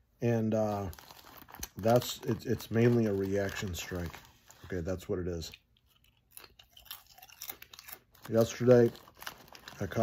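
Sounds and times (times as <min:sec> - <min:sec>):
person chewing crunchy food: 0:05.8 - 0:08.4.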